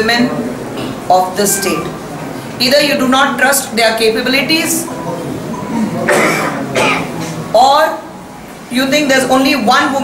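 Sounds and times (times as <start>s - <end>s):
person coughing: 6.0s - 7.1s.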